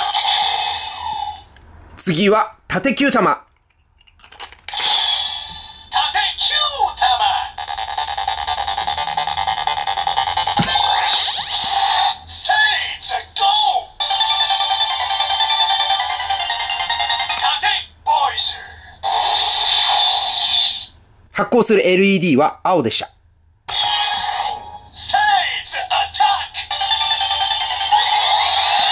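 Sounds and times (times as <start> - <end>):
toy electronic sound effects: 0.0 - 1.5, 4.7 - 21.0, 23.7 - 28.9.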